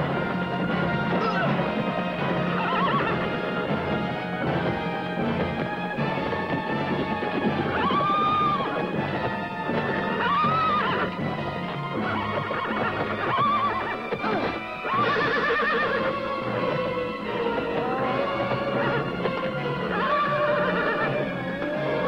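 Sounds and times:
film score music: 0.0 - 22.0
horse neighing: 2.4 - 3.4, 9.9 - 11.1, 12.0 - 16.3, 17.7 - 19.2, 19.8 - 22.0.

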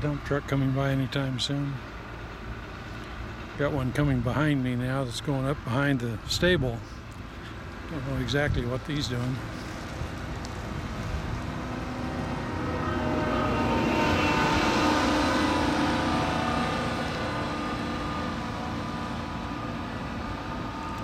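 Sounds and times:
diesel loader engine driving past: 0.0 - 21.0.

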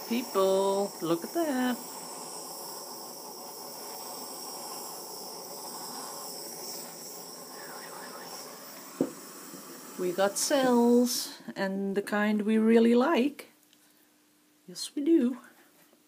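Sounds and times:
gas torch flame hissing: 0.0 - 11.5.

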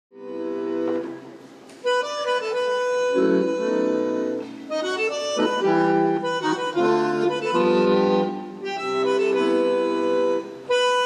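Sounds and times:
bandoneon playing tango chords: 0.1 - 11.0.

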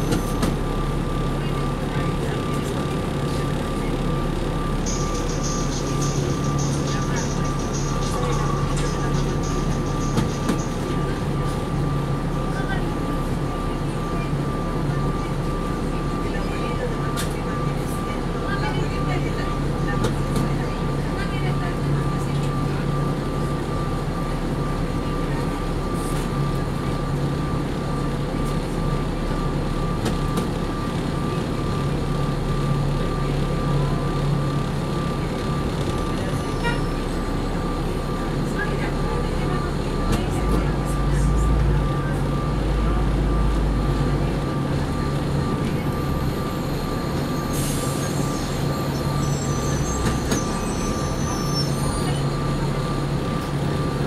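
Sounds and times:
bus engine low hum: 0.0 - 54.0.

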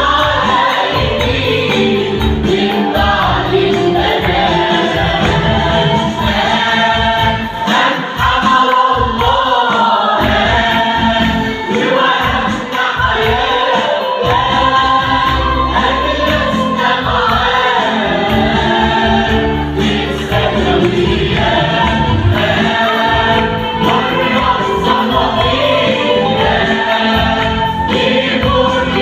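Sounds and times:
mixed choir singing a hymn: 0.0 - 29.0.

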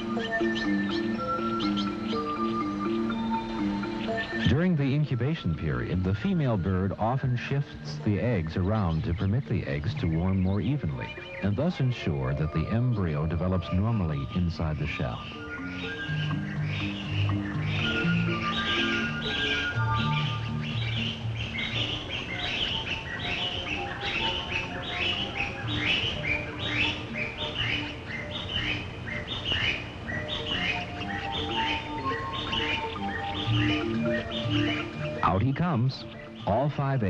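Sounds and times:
background music with low notes: 0.0 - 37.0
bird chirping: 0.0 - 37.0.

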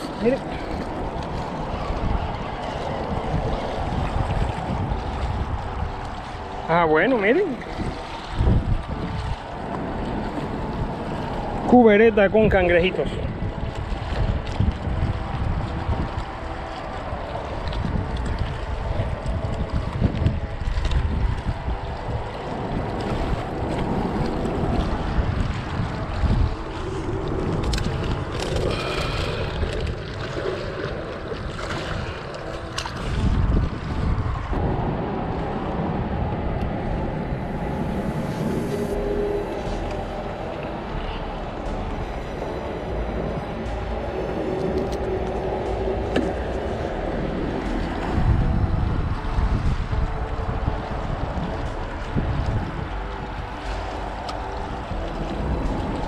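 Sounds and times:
waves lapping on rocky shore: 0.0 - 56.0
wind buffeting microphone: 0.0 - 56.0.

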